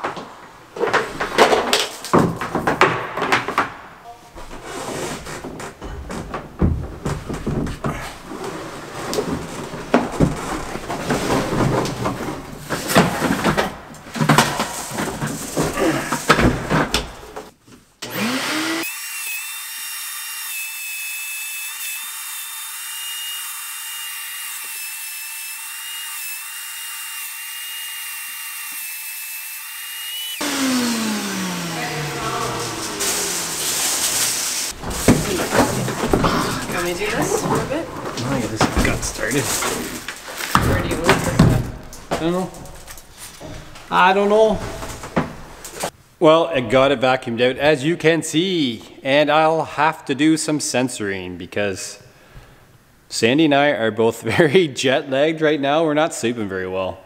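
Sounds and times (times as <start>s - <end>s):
vacuum motor whine: 30.4s - 34.7s
seed rattling in hose: 32.6s - 34.8s.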